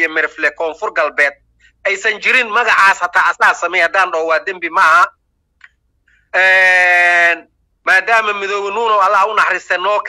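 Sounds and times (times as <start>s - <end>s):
man's drawn-out hesitation sound: 6.3s - 10.0s.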